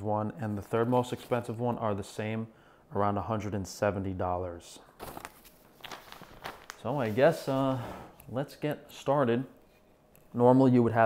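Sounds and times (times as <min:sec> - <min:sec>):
paper rustling and crackling: 0:05.0 - 0:07.6.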